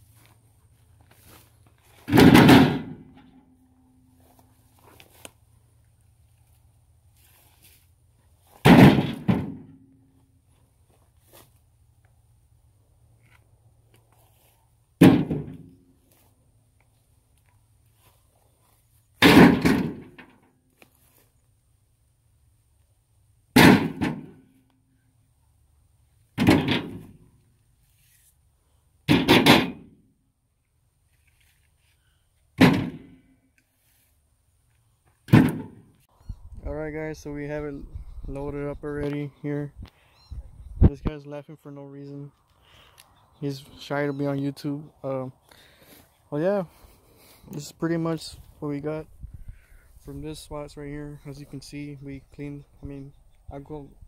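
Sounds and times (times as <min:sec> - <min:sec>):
logs thudding into metal trailer: 0:01.9 - 0:03.5, 0:08.5 - 0:09.8, 0:15.0 - 0:15.8, 0:19.2 - 0:20.4, 0:23.5 - 0:24.4, 0:26.4 - 0:27.3, 0:29.1 - 0:30.0, 0:32.6 - 0:33.2, 0:35.3 - 0:35.9.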